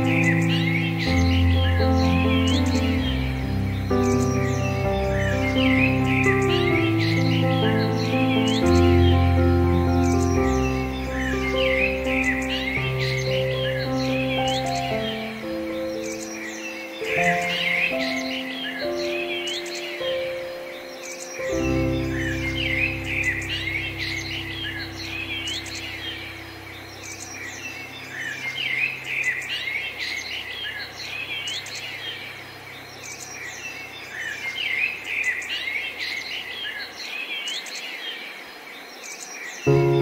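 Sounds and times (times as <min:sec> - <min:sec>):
soft piano: 0:00.0 - 0:35.7, 0:39.6 - 0:40.0
songbirds chirping and singing: 0:00.0 - 0:40.0.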